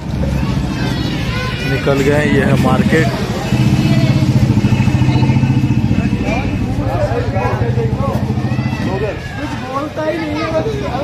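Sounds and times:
people talking in street: 0.0s - 11.0s
vehicle engine idling: 0.0s - 11.0s.

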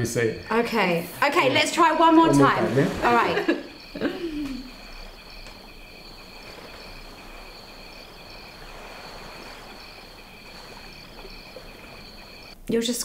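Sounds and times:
crickets chirring: 0.0s - 12.6s.

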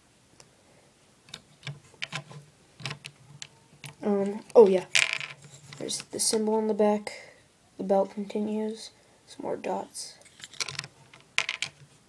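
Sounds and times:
plastic toy bricks clicking: 4.9s - 6.0s, 10.3s - 11.8s.

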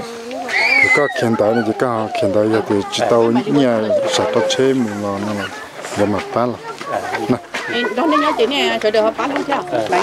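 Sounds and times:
man talking: 0.9s - 7.4s.

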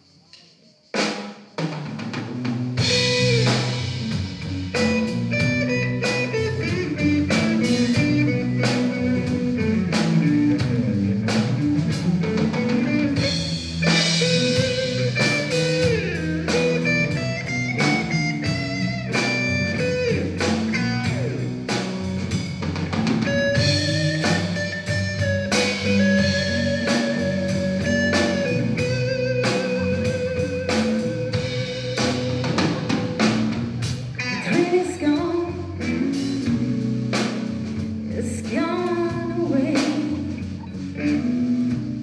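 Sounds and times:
blues band playing: 1.0s - 42.0s
high lead guitar notes: 2.8s - 38.1s.

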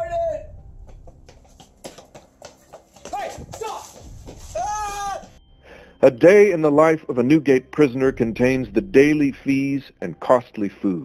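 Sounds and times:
footsteps running on concrete: 0.8s - 5.4s
person crying out: 4.6s - 5.3s.

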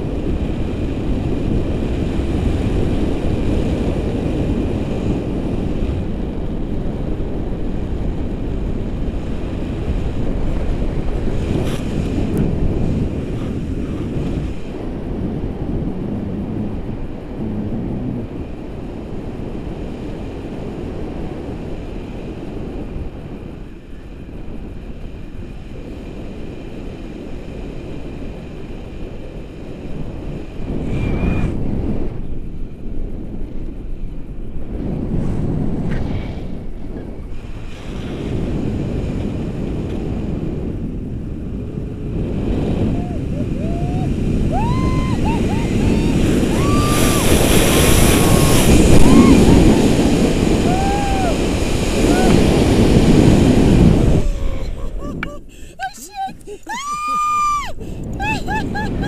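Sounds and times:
wind buffeting microphone: 0.0s - 59.0s
woman exclaiming and laughing: 43.0s - 47.4s, 50.6s - 51.4s, 54.2s - 59.0s.

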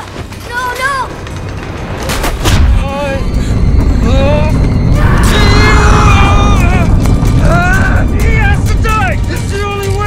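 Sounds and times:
loud film music: 0.1s - 10.0s.

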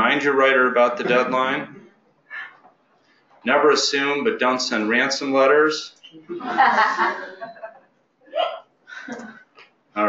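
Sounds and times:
bursts of laughter: 6.3s - 7.8s.

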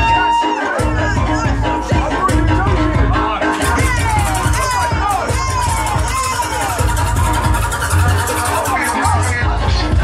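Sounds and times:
footwork music with heavy bass: 0.0s - 10.0s.

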